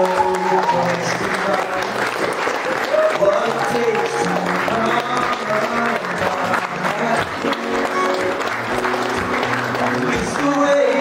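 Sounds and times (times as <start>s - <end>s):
guests applauding: 0.0s - 11.0s
music playing: 0.0s - 11.0s.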